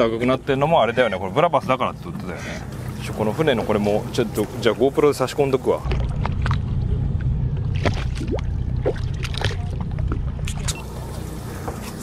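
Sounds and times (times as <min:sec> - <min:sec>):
boat outboard engines idling: 0:00.0 - 0:12.0
water slapping against hull: 0:02.6 - 0:10.8.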